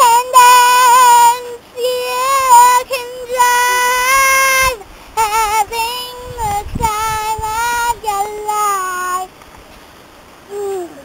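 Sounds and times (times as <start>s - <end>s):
child singing high notes: 0.0s - 9.3s.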